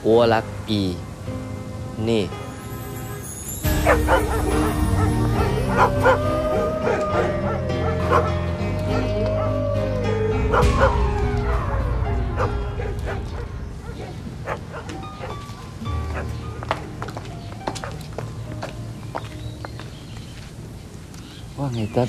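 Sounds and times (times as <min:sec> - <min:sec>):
sliding high melody: 0:02.4 - 0:12.8
low bass notes: 0:03.7 - 0:15.1.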